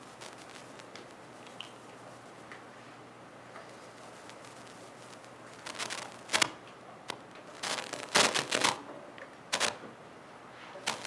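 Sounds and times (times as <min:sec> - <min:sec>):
rustling and handling noise: 0:03.6 - 0:08.8, 0:09.5 - 0:09.8, 0:10.6 - 0:11.0.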